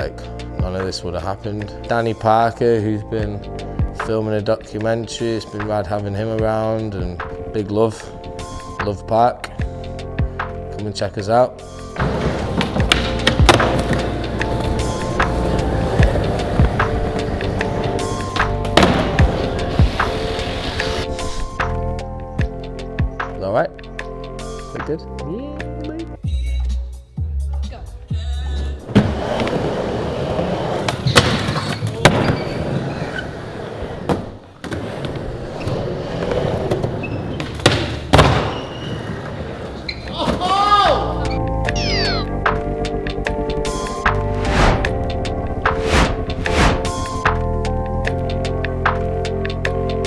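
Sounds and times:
background music: 0.0s - 50.0s
skateboard wheels rolling on plywood: 12.0s - 21.2s, 28.9s - 40.5s
skateboard landing clack: 37.6s - 38.6s.

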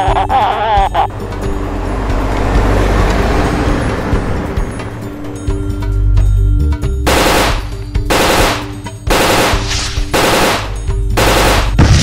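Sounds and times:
automatic rifle fire bursts: 7.1s - 12.0s
loud explosion: 11.5s - 12.0s.

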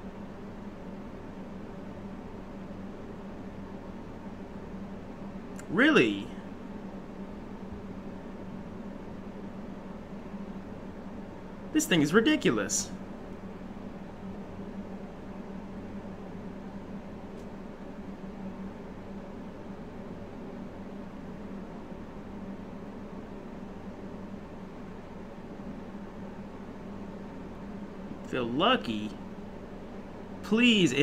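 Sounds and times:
low constant hum: 0.0s - 31.0s
room noise hiss: 0.0s - 31.0s.

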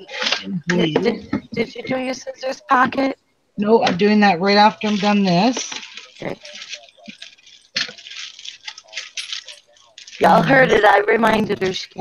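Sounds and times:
beads clinking in plastic box: 5.6s - 10.4s.

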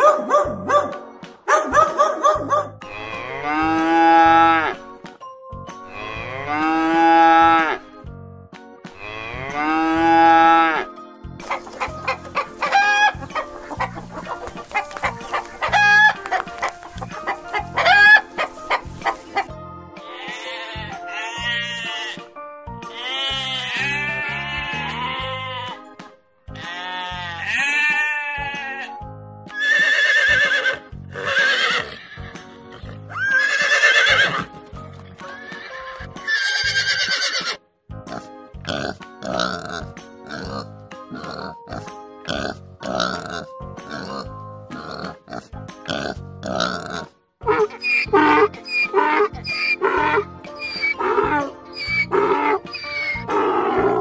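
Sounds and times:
chicken clucking: 11.5s - 19.5s
crowing-like calls: 11.5s - 19.5s, 47.5s - 54.0s
cow mooing: 45.9s - 54.0s.

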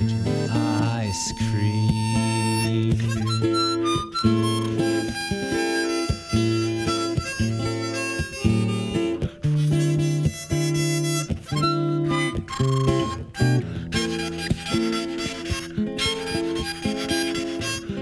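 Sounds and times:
acoustic guitar: 0.0s - 18.0s
harmonica playing: 0.0s - 18.0s.

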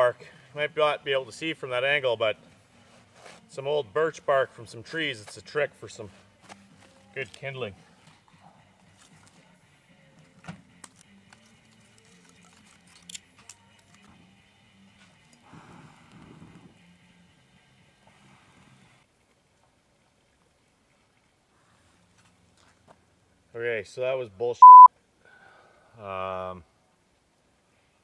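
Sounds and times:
paper rustle: 10.8s - 14.1s.

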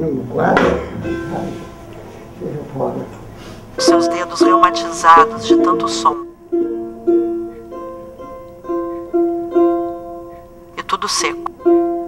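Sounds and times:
fiddle strings plucked: 0.5s - 3.2s.

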